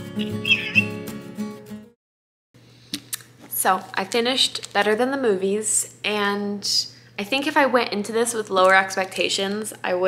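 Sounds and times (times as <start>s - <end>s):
lo-fi music: 0.0s - 1.2s.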